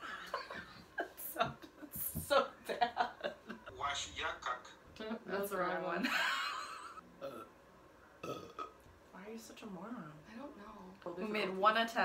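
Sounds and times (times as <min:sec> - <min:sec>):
person burping: 0:07.2 - 0:07.6, 0:08.2 - 0:08.8.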